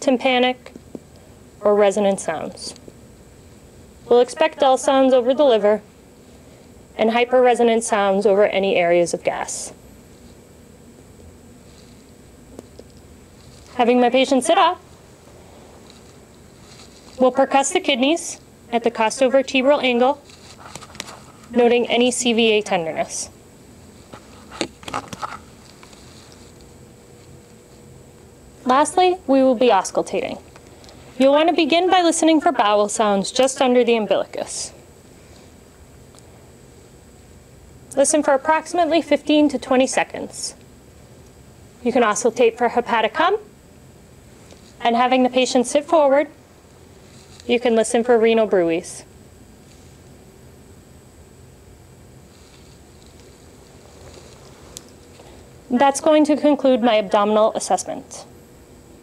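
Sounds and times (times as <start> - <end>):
low steady hiss: 0.0 - 59.0
faint rustling: 11.5 - 12.2, 13.2 - 13.8, 14.8 - 17.3, 20.2 - 21.6, 23.8 - 27.8, 46.9 - 47.5, 52.2 - 55.4.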